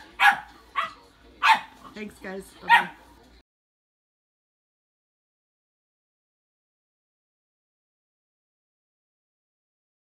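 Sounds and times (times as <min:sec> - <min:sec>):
puppy barking: 0:00.0 - 0:01.8, 0:02.6 - 0:03.0.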